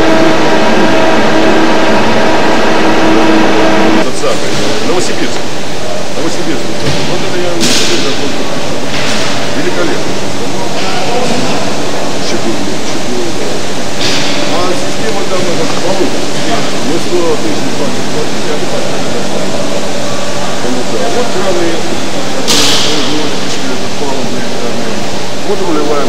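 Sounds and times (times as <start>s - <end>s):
factory hall noise: 0.0s - 26.0s
indistinct voices: 0.0s - 26.0s
workshop machinery noise: 0.0s - 26.0s.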